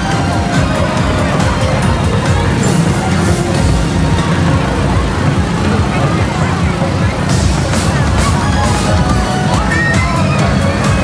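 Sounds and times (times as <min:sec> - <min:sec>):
bass-heavy music over loudspeakers: 0:00.0 - 0:11.0
crowd voices: 0:00.0 - 0:11.0.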